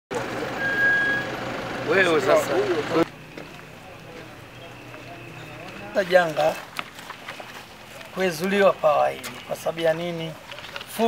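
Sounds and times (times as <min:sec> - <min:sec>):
distant people talking: 0:00.1 - 0:11.0.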